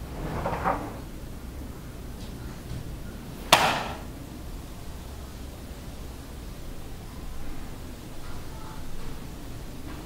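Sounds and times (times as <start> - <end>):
sharp bang: 3.5 - 4.1.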